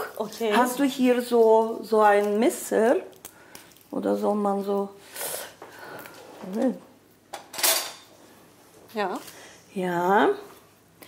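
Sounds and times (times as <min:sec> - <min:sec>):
cutlery clattering on a table: 0:07.3 - 0:08.1.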